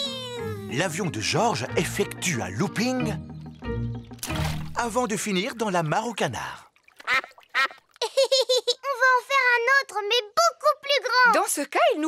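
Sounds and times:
cartoon ducks quacking: 7.0 - 7.8.

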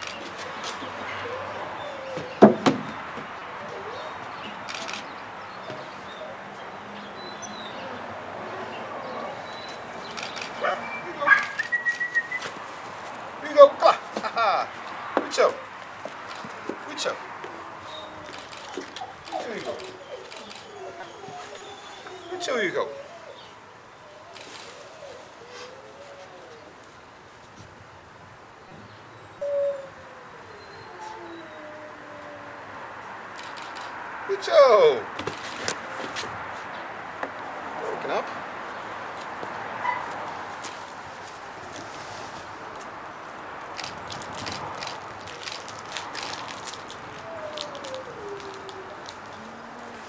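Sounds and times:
animal calling: 7.2 - 12.6, 15.4 - 26.8, 46.2 - 50.0
puppy yipping and whining: 9.2 - 12.5, 17.9 - 26.3, 39.8 - 40.2.

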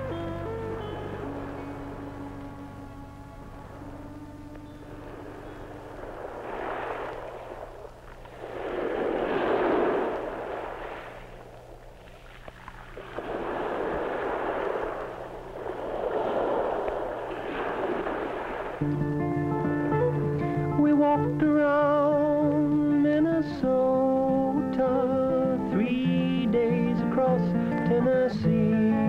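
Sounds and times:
waves washing ashore: 0.0 - 20.1.

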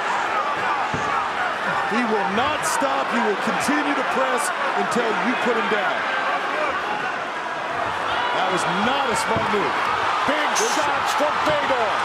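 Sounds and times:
arena crowd noise: 0.0 - 12.0
men commentating: 0.6 - 7.1, 8.1 - 12.0.

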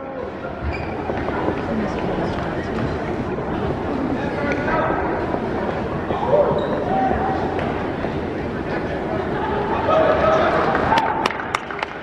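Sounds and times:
echoing crowd chatter: 0.0 - 12.0.

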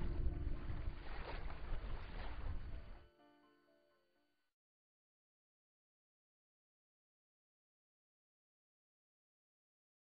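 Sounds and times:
wind rumbling on microphone: 0.0 - 3.0.

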